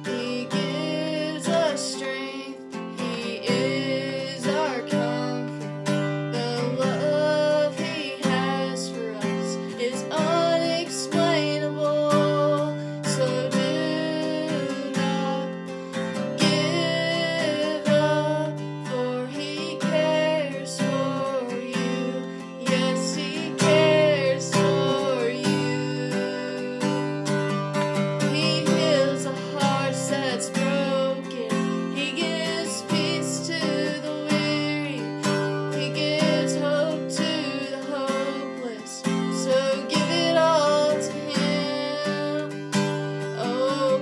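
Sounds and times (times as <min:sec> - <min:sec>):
acoustic guitar strumming: 0:00.0 - 0:44.0
woman singing: 0:00.0 - 0:44.0.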